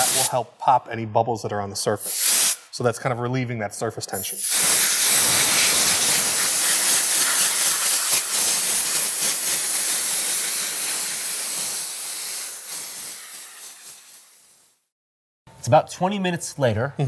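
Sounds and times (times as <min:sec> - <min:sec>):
compressed air blow gun hissing: 0:00.0 - 0:00.4, 0:02.0 - 0:02.7, 0:04.3 - 0:14.9.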